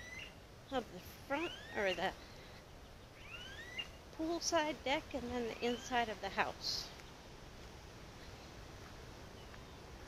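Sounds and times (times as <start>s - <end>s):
bird whistling rising notes: 0.0s - 0.4s, 3.1s - 4.0s.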